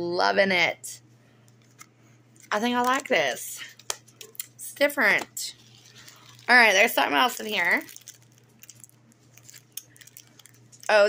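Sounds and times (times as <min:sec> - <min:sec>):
plastic bag crinkling: 0:02.4 - 0:04.5, 0:05.4 - 0:11.0.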